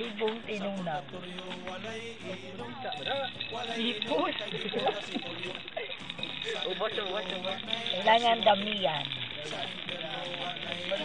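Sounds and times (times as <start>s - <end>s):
background music: 0.0s - 11.0s
person speaking: 0.0s - 11.0s.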